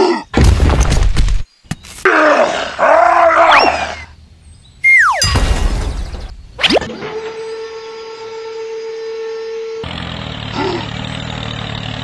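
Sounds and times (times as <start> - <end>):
cartoonish groaning voice effect: 0.0 - 0.3, 10.5 - 11.0
falling slide whistle tone: 4.8 - 5.2.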